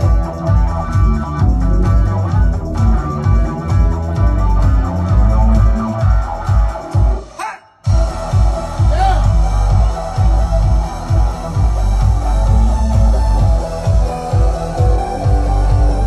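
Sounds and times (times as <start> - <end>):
heavy pulsing bass beat: 0.0 - 16.0
live band instrumental: 0.0 - 16.0.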